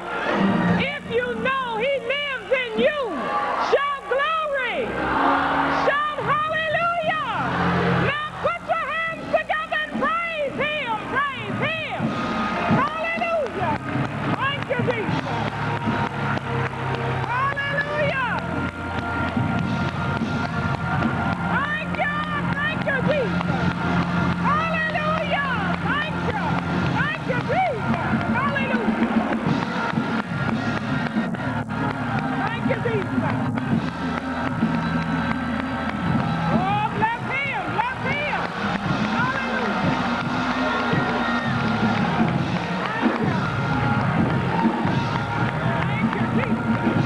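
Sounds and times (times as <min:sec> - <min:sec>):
organ and bass notes: 0:11.1 - 0:47.0
hands clapping quickly: 0:12.6 - 0:47.0.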